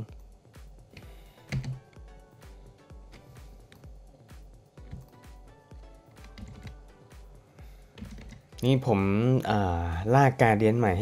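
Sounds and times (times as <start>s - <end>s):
man speaking: 8.6s - 11.0s.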